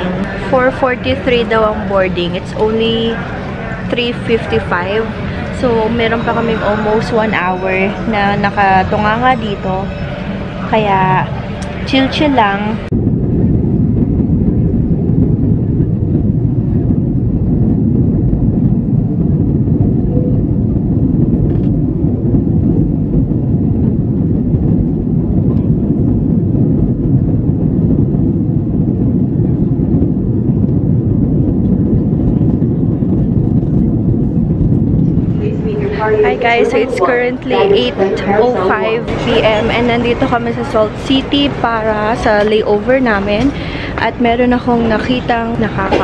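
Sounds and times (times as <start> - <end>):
jet engines and rushing air roar: 0.0 - 46.0.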